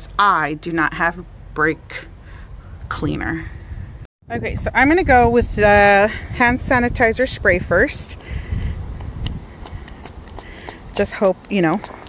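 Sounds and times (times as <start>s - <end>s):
low wind rumble on microphone: 2.2s - 12.0s.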